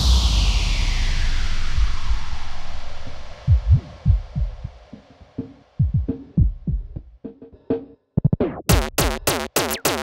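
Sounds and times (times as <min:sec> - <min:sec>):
deep drum machine kicks: 0:03.4 - 0:04.8, 0:05.8 - 0:07.3, 0:08.3 - 0:09.8.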